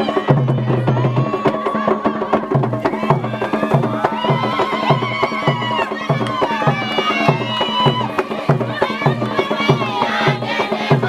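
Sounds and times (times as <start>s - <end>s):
drums beating: 0.0s - 11.0s
high held vocal call: 0.0s - 11.0s
sharp clicking percussion: 0.0s - 11.0s.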